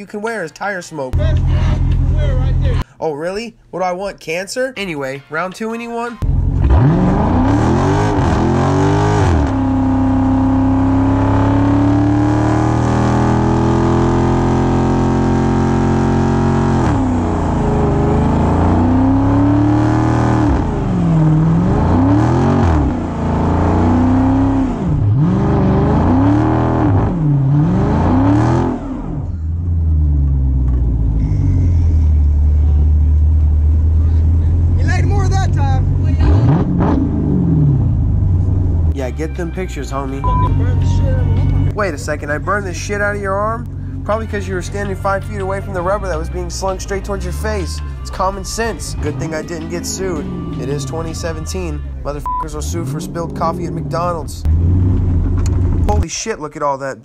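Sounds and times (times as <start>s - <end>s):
car engine revving: 6.2s - 39.0s, 40.0s - 56.0s.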